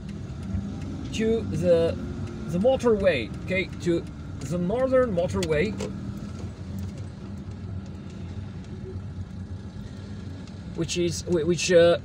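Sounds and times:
car engine running at low speed: 0.0 - 12.0.

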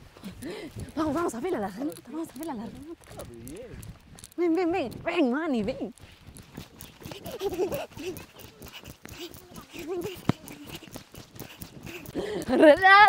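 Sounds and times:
running footsteps on dirt path: 0.0 - 13.0
faint voices: 8.0 - 13.0.

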